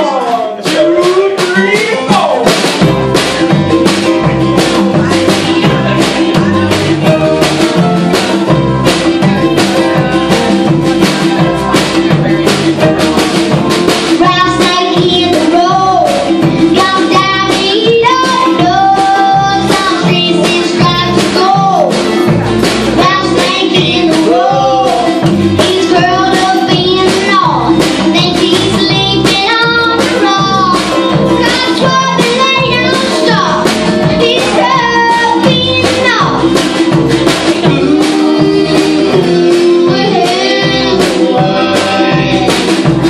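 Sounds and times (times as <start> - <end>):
acoustic band playing: 0.0 - 43.0
drums: 0.0 - 43.0
guitar: 0.0 - 43.0
upright bass: 0.0 - 43.0
girl singing with vibrato: 14.0 - 22.3, 23.0 - 43.0.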